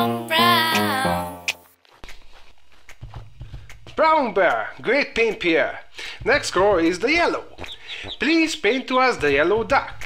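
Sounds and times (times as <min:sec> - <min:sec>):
cartoon footsteps: 0:00.7 - 0:10.0.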